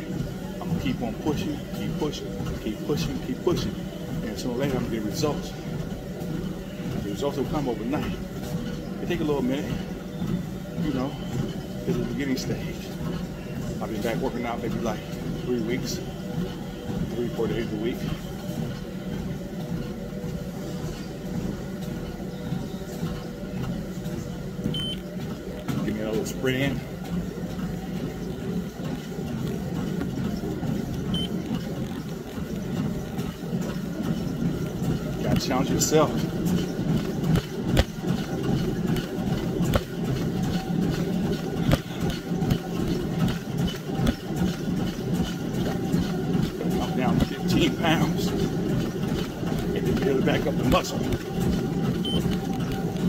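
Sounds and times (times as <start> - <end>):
treadmill motor and belt rumble: 0.0 - 53.0.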